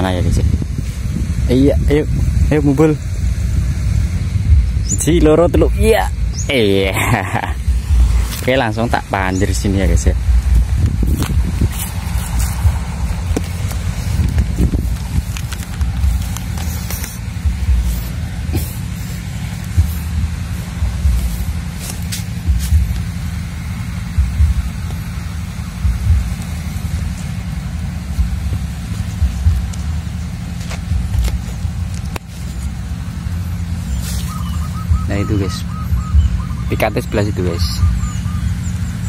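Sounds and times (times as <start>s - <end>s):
wind buffeting microphone: 0.0s - 36.7s
steady low hum: 0.0s - 39.0s.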